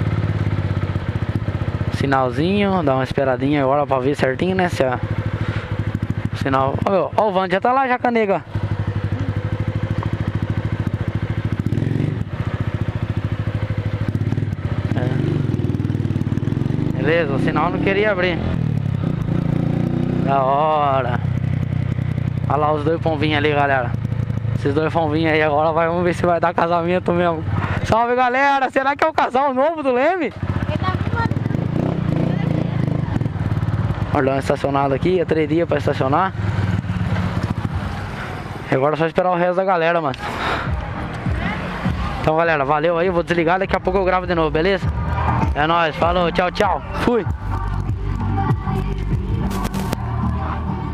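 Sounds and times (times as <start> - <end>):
motorcycle engine idling: 0.0 - 38.8, 40.6 - 50.9
motorcycle engine revving: 0.0 - 38.9, 39.9 - 50.9.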